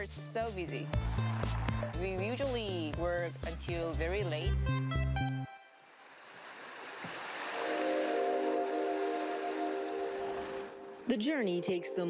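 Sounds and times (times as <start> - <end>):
background music beat: 0.0 - 5.6.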